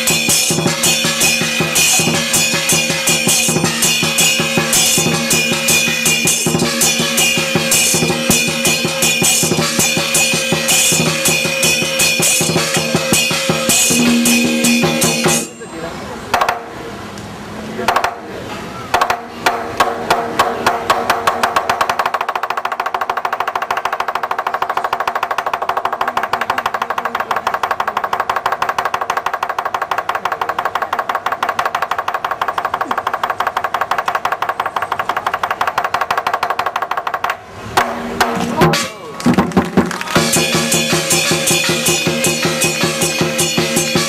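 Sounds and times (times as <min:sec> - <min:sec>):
drum and cymbals roll: 0:00.0 - 0:15.6, 0:37.8 - 0:44.0.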